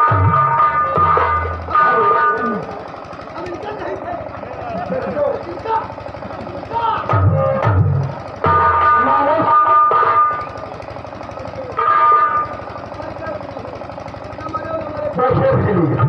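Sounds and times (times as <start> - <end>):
music accompaniment: 0.0 - 2.8, 6.8 - 13.4.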